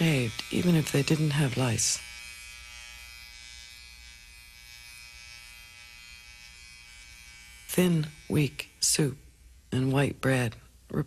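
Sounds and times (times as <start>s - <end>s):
steady electric buzz: 0.0s - 10.5s.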